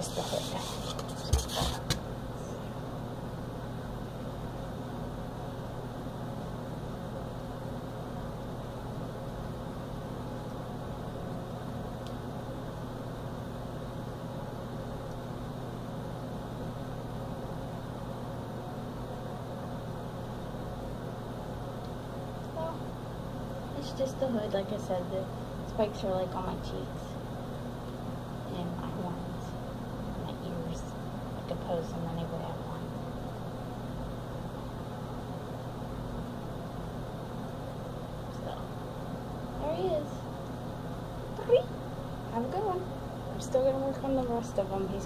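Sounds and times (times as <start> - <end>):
ceiling fan humming and whooshing: 0.0 - 45.0.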